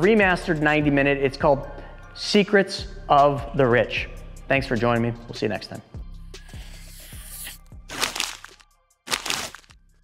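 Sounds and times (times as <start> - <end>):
paper ripping: 6.6 - 9.7.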